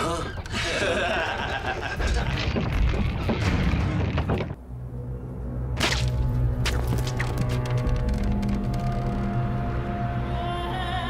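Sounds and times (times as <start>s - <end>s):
low music drone: 4.6s - 11.0s.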